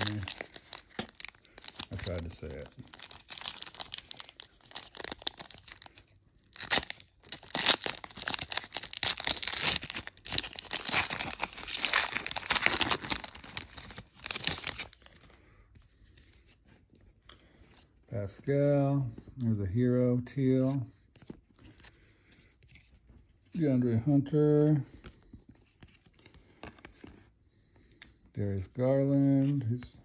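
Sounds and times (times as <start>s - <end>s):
foil wrapper tearing and crinkling: 0.0s - 15.1s.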